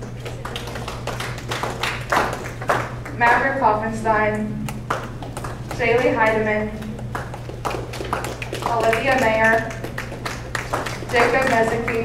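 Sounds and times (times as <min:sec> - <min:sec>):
audience applause: 0:00.0 - 0:03.2, 0:04.8 - 0:05.8, 0:06.8 - 0:12.0
steady low hum: 0:00.0 - 0:12.0.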